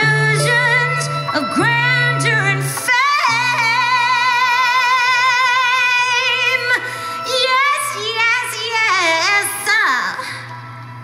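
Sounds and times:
person singing with vibrato: 0:00.0 - 0:10.4
steady low held tone: 0:00.0 - 0:11.0.

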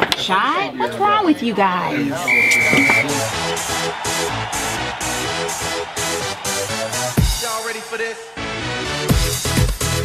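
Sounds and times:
whistle blast: 0:02.3 - 0:03.1
electronic dance music: 0:02.3 - 0:09.8.

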